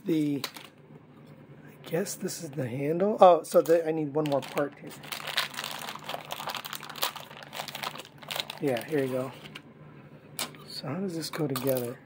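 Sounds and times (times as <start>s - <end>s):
plastic packaging crinkling: 0.0s - 0.8s, 3.6s - 9.6s.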